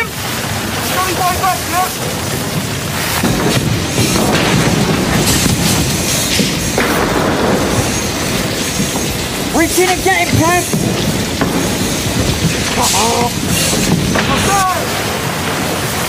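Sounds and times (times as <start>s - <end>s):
burning debris crashing down: 0.0s - 16.0s
roar of building fire: 0.0s - 16.0s
person shouting: 14.3s - 15.0s.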